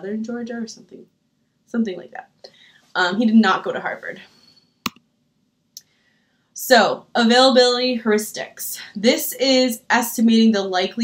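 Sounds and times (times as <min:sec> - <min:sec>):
computer mouse clicks: 0:04.9 - 0:05.1.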